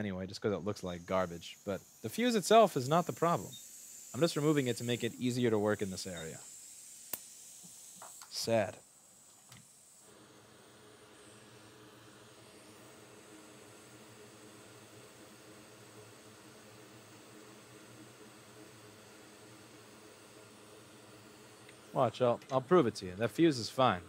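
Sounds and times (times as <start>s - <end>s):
light hiss: 0.2s - 24.0s
small fan motor humming: 0.3s - 24.0s.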